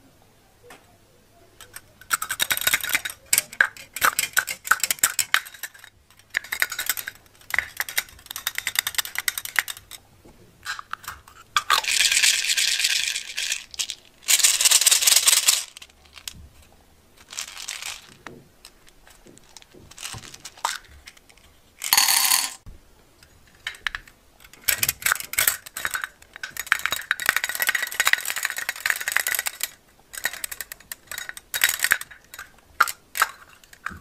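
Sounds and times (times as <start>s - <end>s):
plastic beads rattling in metal tin: 1.6s - 10.0s, 10.7s - 16.4s, 17.2s - 18.8s, 19.4s - 21.2s, 21.8s - 22.6s, 24.5s - 34.0s.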